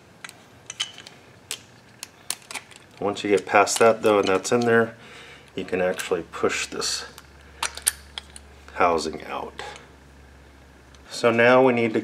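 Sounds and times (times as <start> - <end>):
small sharp metal clicks: 7.1 - 8.5.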